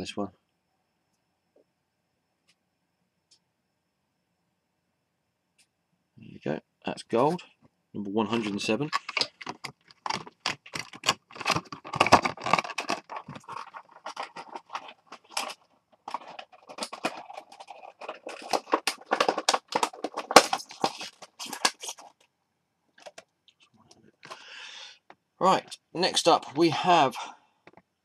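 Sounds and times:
handling clicks scrapes and rustles: 0:08.3 - 0:22.2, 0:23.0 - 0:23.3.

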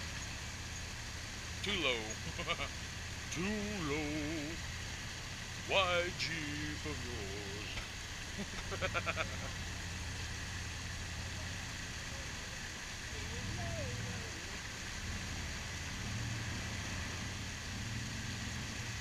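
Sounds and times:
engine running at low revs: 0:00.0 - 0:19.0.

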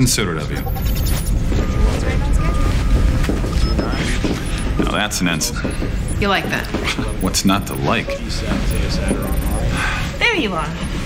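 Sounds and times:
low ambient rumble: 0:00.0 - 0:11.0.

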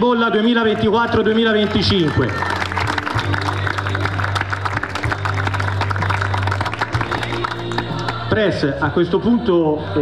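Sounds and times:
background music with low bass: 0:00.0 - 0:10.0
crowd applauding: 0:00.4 - 0:08.3.

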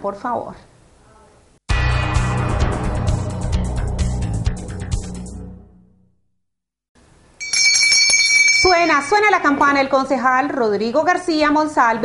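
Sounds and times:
hand bell ringing: 0:07.4 - 0:09.2.

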